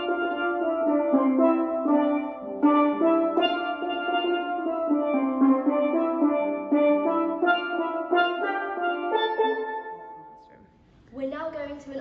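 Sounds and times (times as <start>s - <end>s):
steel pans playing rhythmic tune: 0.0s - 10.4s.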